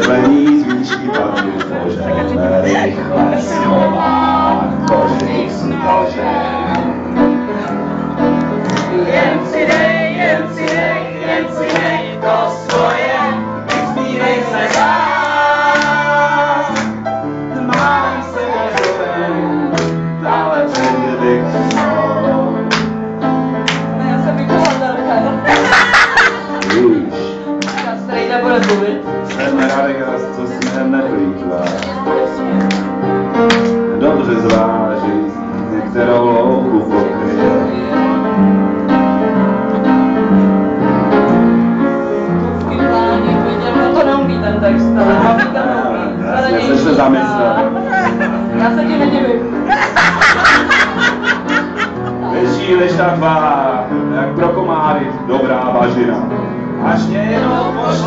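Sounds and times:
person singing: 0:00.0 - 0:07.1, 0:17.6 - 0:22.7.

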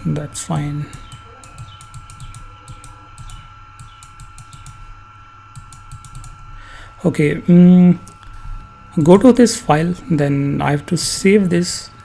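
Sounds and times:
computer mouse clicking: 0:00.9 - 0:04.8, 0:05.5 - 0:06.4.

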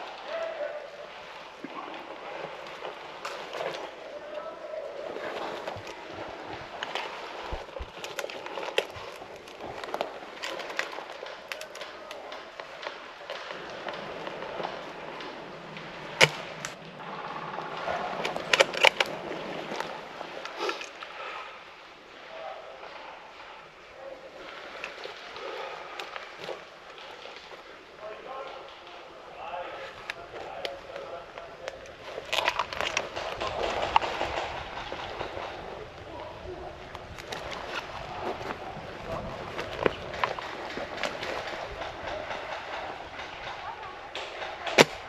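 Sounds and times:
branches scraping against clothing: 0:00.0 - 0:21.4, 0:24.4 - 0:45.0
dry twigs snapping: 0:06.7 - 0:16.8, 0:18.1 - 0:21.0, 0:31.6 - 0:34.5.

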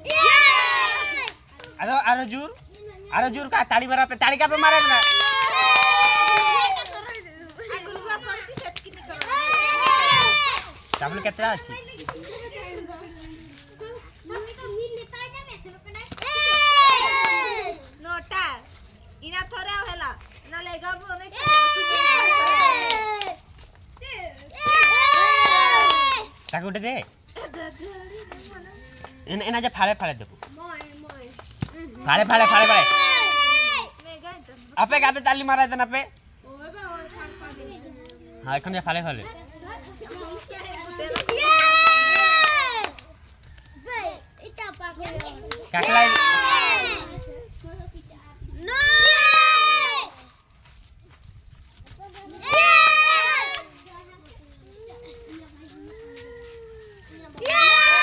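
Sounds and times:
children cheering shouts: 0:00.0 - 0:01.4, 0:04.5 - 0:07.0, 0:09.2 - 0:10.8, 0:16.2 - 0:17.8, 0:21.4 - 0:23.3, 0:24.6 - 0:26.3, 0:32.2 - 0:33.9, 0:41.2 - 0:43.0, 0:45.8 - 0:47.2, 0:48.7 - 0:50.2, 0:52.4 - 0:53.8, 0:55.9 - 0:58.0
children's low chatter: 0:39.2 - 0:58.0
child's high-pitched cry: 0:54.6 - 0:58.0.

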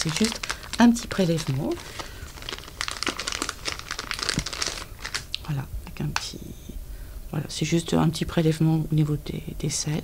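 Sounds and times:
plastic bag crinkling: 0:00.0 - 0:05.4.

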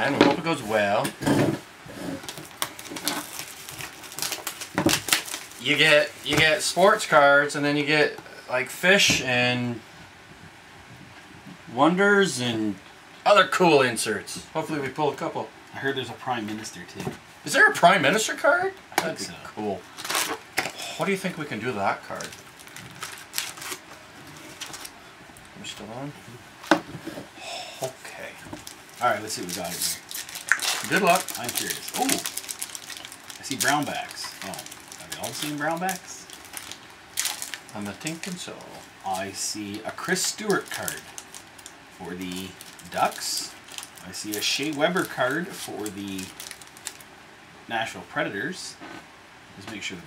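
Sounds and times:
cellophane ripping: 0:02.1 - 0:06.6, 0:19.9 - 0:21.2, 0:22.0 - 0:25.0, 0:28.6 - 0:47.0
cellophane crackling: 0:02.1 - 0:07.2, 0:19.8 - 0:25.0, 0:27.8 - 0:47.1
foil card packs crinkling: 0:02.2 - 0:07.2, 0:19.0 - 0:25.0, 0:27.8 - 0:47.1.

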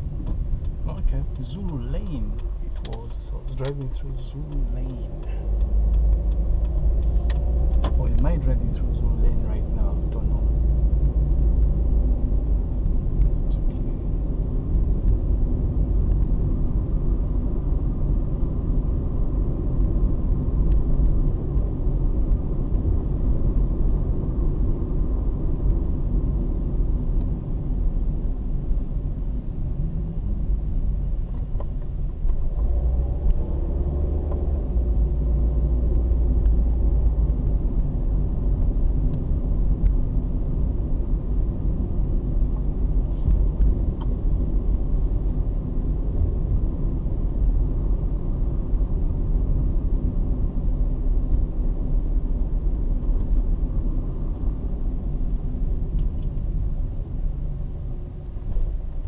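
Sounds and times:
car engine and tyre rumble: 0:00.0 - 0:59.0.

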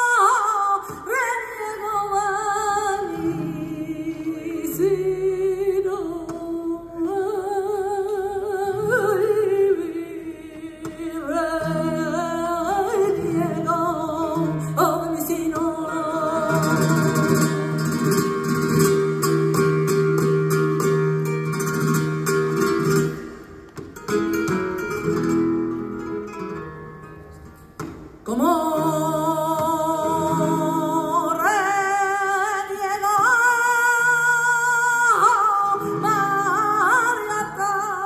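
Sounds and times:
acoustic guitar: 0:00.0 - 0:38.0
person singing ornamented lines: 0:28.3 - 0:38.0.

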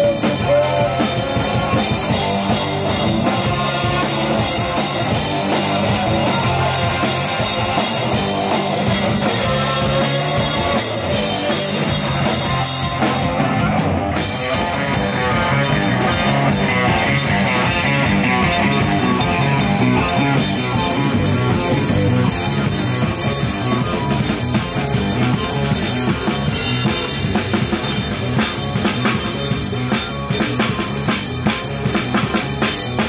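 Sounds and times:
drum kit: 0:00.0 - 0:33.0
electric bass: 0:00.0 - 0:33.0
electric guitar: 0:00.0 - 0:33.0.

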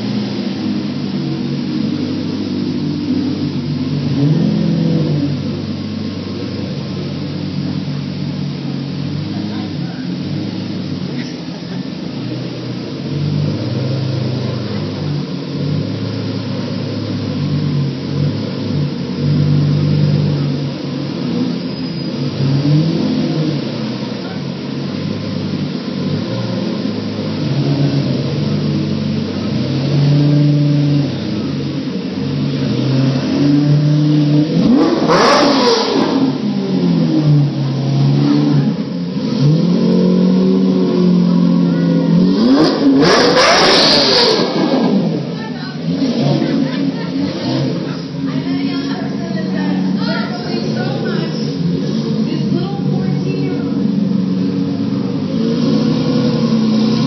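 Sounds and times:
car engine idling: 0:00.0 - 0:57.0
car engine revving: 0:00.0 - 0:57.0.

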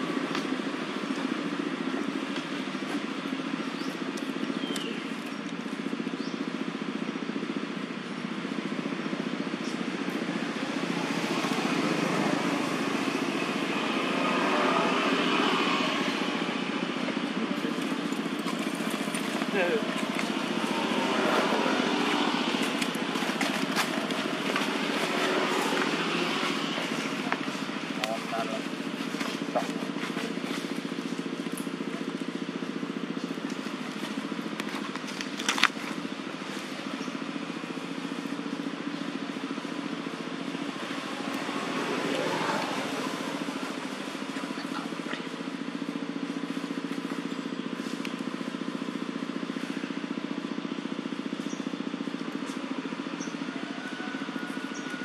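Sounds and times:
indistinct voices: 0:10.3 - 0:30.8.

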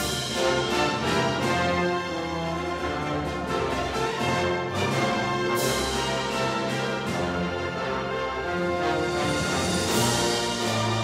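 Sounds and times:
orchestral music with brass: 0:00.0 - 0:11.0.

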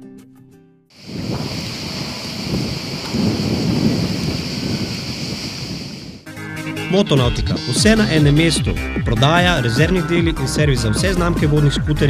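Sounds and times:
steady rushing noise with rumble: 0:01.0 - 0:06.2.

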